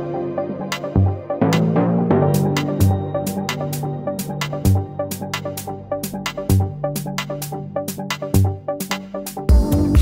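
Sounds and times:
held synth chords: 0.0s - 8.8s.

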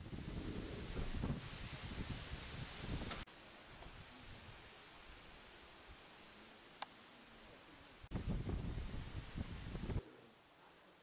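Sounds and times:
wind buffeting microphone: 0.0s - 3.3s, 8.1s - 10.0s
faint outdoor hiss: 0.0s - 11.0s.

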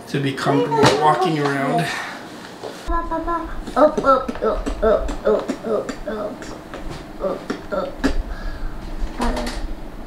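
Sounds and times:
person making wordless sounds: 2.9s - 8.3s.

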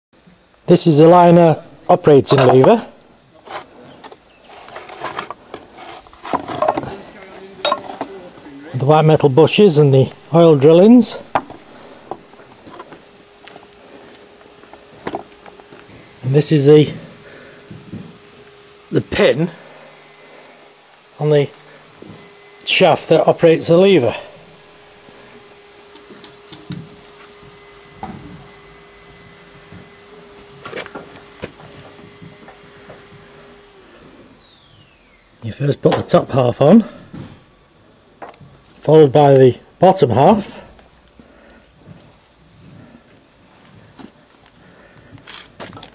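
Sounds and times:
faint high steady whine: 0.2s - 45.9s.

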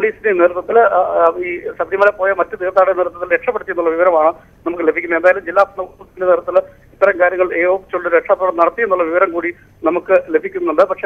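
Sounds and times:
man speaking over telephone: 0.0s - 11.0s.

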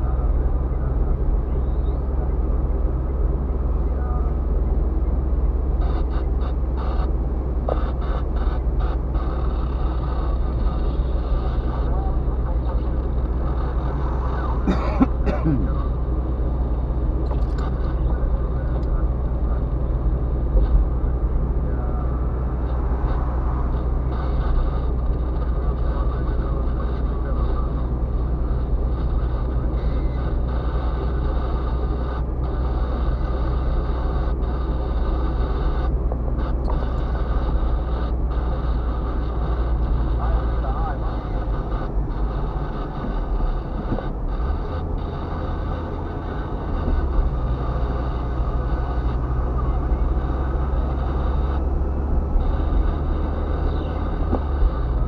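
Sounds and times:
car interior driving drone: 0.0s - 55.0s.

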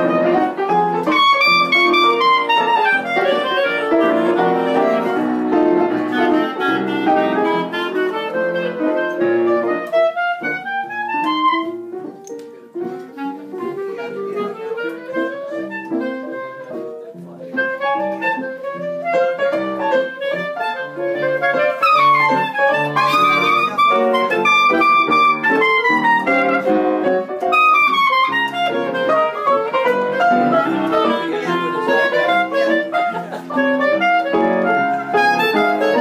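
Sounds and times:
two clarinets improvising: 0.0s - 36.0s.

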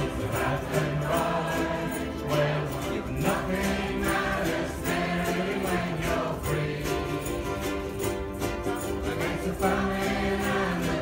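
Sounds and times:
group singing: 0.0s - 8.2s, 8.8s - 11.0s
ukuleles strumming: 0.0s - 11.0s.

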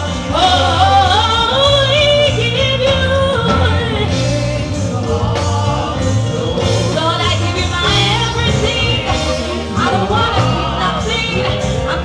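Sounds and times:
backing singers: 0.0s - 12.0s
instrumental accompaniment with bass: 0.0s - 12.0s
woman singing gospel: 0.0s - 12.0s.

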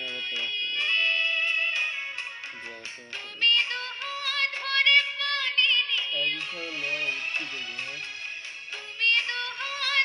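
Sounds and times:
instrumental accompaniment: 0.0s - 10.0s
woman singing with vibrato: 8.9s - 10.0s.

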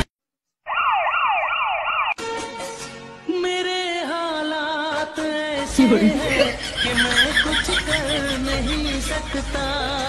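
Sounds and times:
siren in quick sweeps: 0.7s - 2.2s
quiet music: 2.2s - 10.0s.

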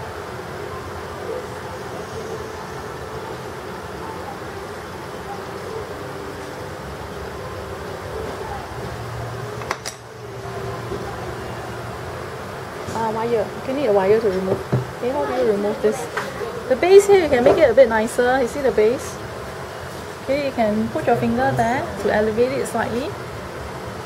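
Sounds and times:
faint voices: 0.0s - 24.0s
fan-like hum: 0.0s - 24.0s.

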